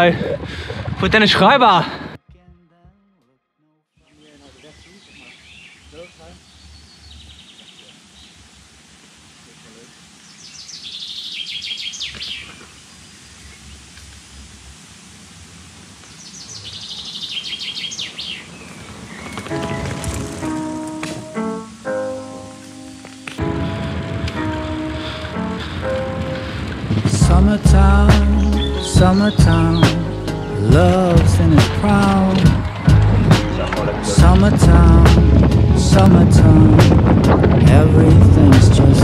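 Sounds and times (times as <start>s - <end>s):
outdoor background noise: 3.9s - 39.0s
songbird trilling: 4.0s - 8.4s, 9.9s - 13.8s, 16.1s - 20.0s, 28.2s - 31.0s
music with held instrumental notes: 19.5s - 39.0s.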